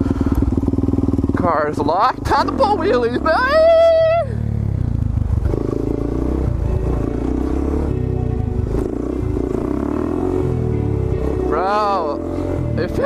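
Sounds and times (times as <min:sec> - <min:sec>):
motorcycle engine under throttle: 0:00.0 - 0:13.0.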